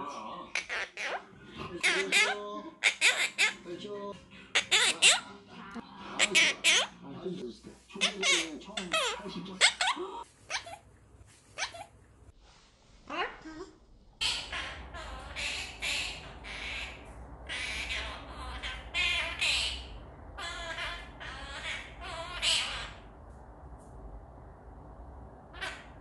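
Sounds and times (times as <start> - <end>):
parakeet harsh squawky chatters: 0.5 - 3.6, 4.5 - 5.3, 6.2 - 7.0, 7.9 - 10.8, 11.5 - 11.9, 14.2 - 23.0, 25.5 - 26.0
parakeet calling: 0.6 - 3.6, 4.5 - 5.3, 6.2 - 7.0, 7.9 - 10.8, 11.5 - 11.9, 14.2 - 23.2, 25.5 - 26.0.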